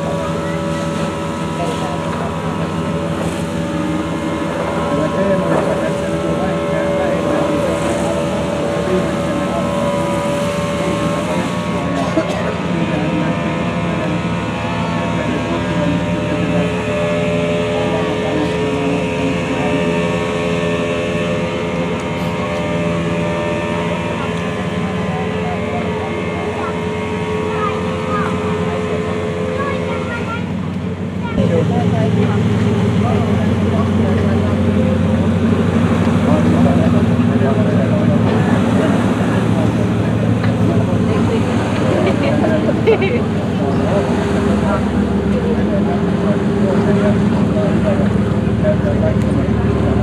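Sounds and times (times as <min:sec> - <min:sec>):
boat engines humming: 0:00.0 - 0:50.0.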